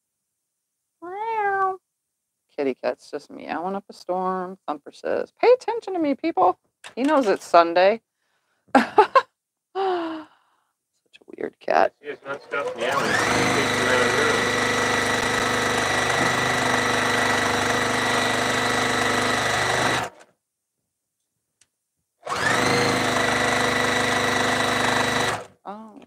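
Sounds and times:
sewing machine stitching: 12.1 - 20.2, 22.2 - 25.6.

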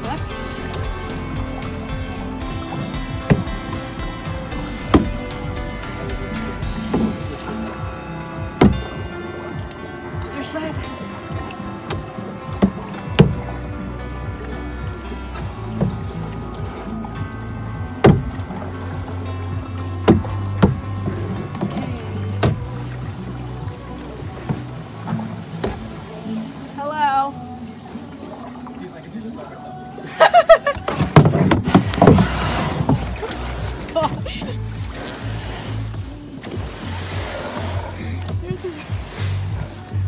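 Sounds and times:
paddle knocking against canoe: 0.0 - 26.1, 30.6 - 40.0
background music: 0.0 - 40.0.

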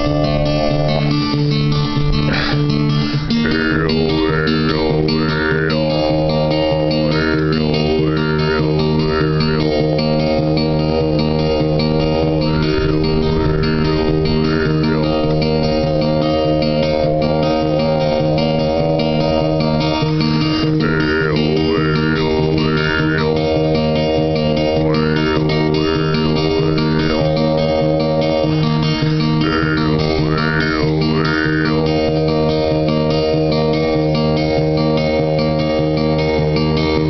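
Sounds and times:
low chanted drone: 0.0 - 1.6, 3.4 - 37.0
acoustic guitar strumming: 0.0 - 37.0.

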